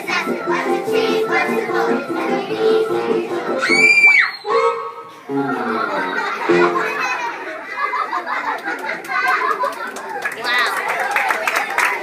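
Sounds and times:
children singing with music: 0.0s - 7.4s
child shrieking: 3.6s - 4.6s.

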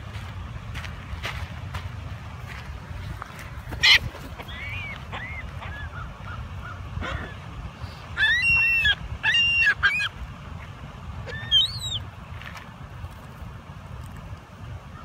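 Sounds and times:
gulls calling: 3.7s - 12.1s.

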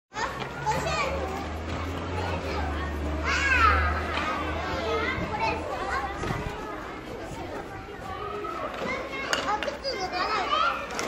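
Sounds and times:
children calling and shouting: 0.1s - 11.0s.

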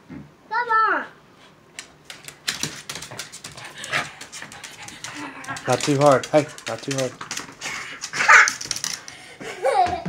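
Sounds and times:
dog claws clicking on hard floor: 1.7s - 10.0s.

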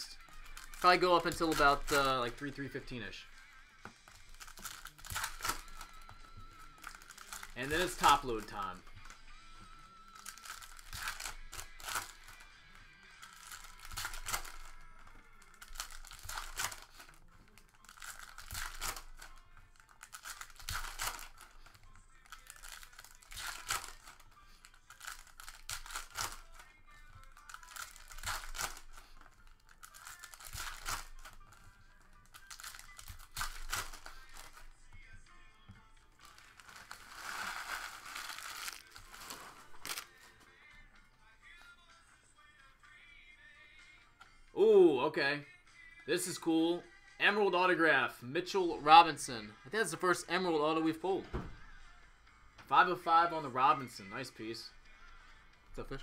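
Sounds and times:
foil wrappers crinkling and tearing: 0.0s - 3.2s, 4.1s - 9.2s, 10.1s - 12.5s, 13.2s - 34.7s, 36.2s - 40.4s
background music: 0.0s - 56.0s.

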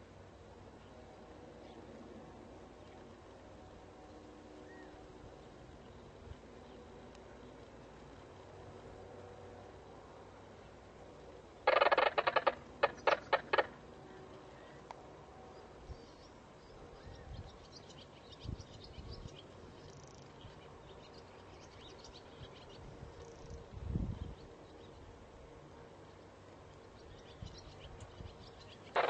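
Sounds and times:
bird chattering call: 11.6s - 13.8s, 28.7s - 29.0s.

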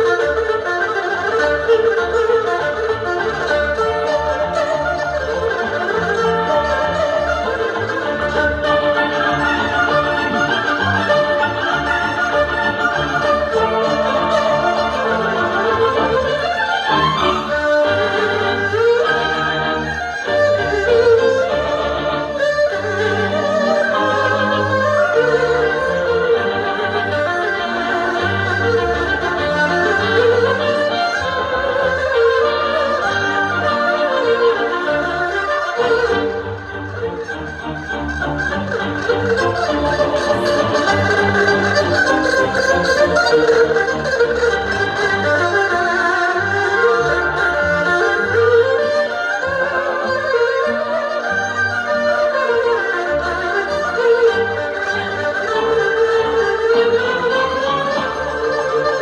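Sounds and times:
erhu duet melody: 0.0s - 59.0s.

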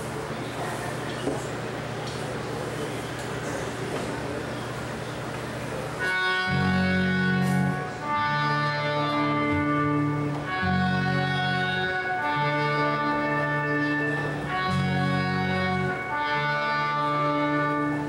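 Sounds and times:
live band playing instrumental: 5.9s - 18.0s.

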